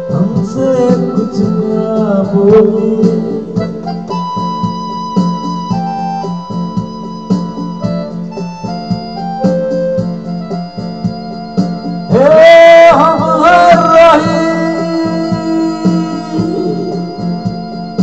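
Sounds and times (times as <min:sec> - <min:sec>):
electronic keyboard melody: 0:00.0 - 0:18.0
programmed beat: 0:00.0 - 0:18.0.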